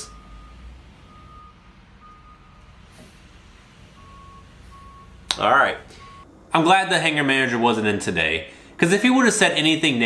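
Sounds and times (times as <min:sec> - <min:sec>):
vehicle reversing alarm beeps: 0:00.0 - 0:06.3.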